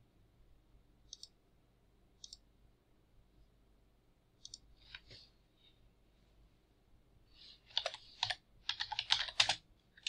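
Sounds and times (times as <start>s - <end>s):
computer mouse clicks: 1.1s - 1.4s, 2.2s - 2.5s, 4.4s - 5.2s, 7.7s - 10.0s.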